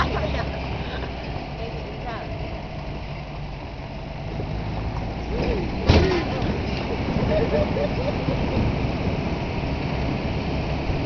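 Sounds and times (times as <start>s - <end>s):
road noise on dirt track: 0.0s - 11.0s
truck engine humming: 0.0s - 11.0s.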